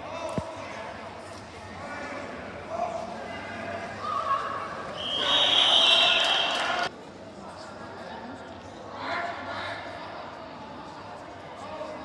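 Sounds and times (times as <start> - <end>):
referee's whistle blast: 5.0 - 6.5.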